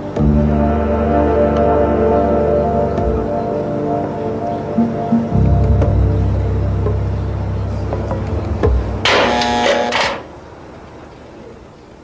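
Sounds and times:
metal gate sliding open: 9.0 - 10.3.

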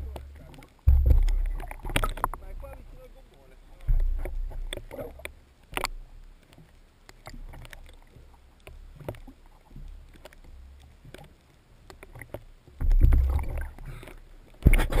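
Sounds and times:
sea water sloshing and splashing: 0.0 - 15.0.

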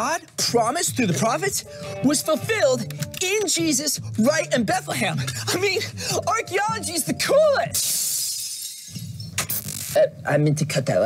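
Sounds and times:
clay pot shattering: 7.8 - 9.1.

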